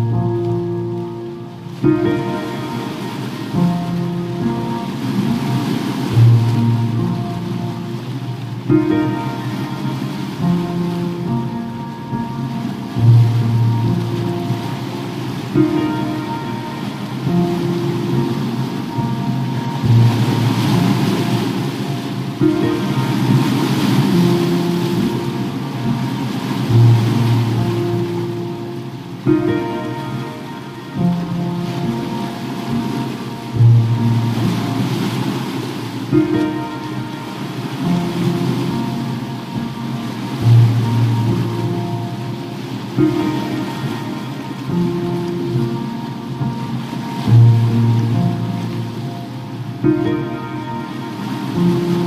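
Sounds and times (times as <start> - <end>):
ocean waves: 0.0 - 52.0
slow solo piano: 0.0 - 52.0.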